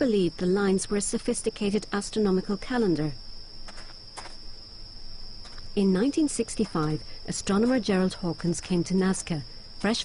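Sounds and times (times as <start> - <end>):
faint hiss: 1.8 - 10.0.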